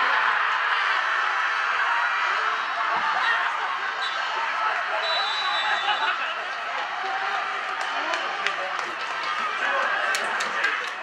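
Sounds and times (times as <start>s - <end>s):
teenagers shouting and cheering: 0.0s - 11.0s.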